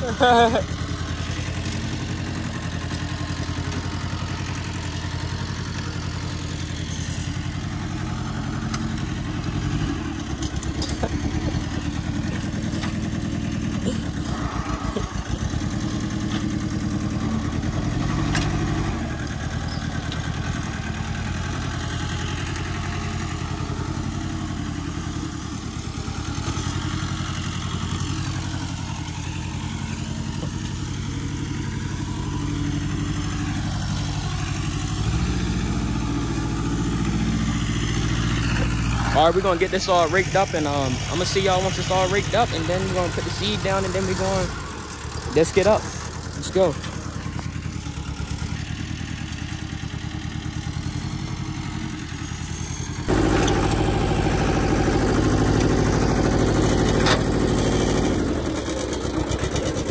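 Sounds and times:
tractor engine running: 0.0s - 59.9s.

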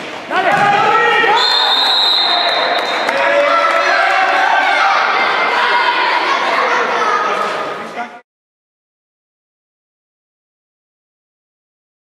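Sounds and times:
crowd shouting and cheering: 0.0s - 8.2s
high whistle blast: 1.3s - 3.1s.

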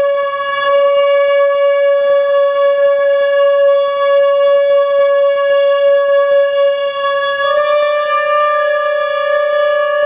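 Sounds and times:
wind instrument long note: 0.0s - 10.0s.

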